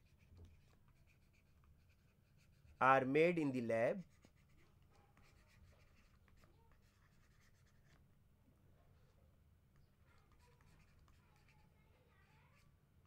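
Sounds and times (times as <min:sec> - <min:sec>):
stylus writing on tablet: 0:00.0 - 0:08.1, 0:09.8 - 0:12.8.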